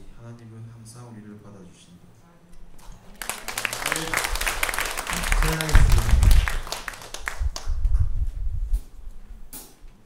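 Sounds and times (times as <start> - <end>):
applause: 2.8 - 8.0
microphone handling rumble: 5.6 - 6.6, 7.4 - 9.0.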